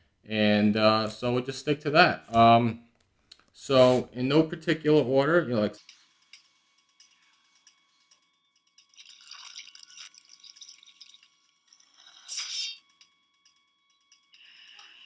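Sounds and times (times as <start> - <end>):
faint steady tone: 5.8 - 15.0.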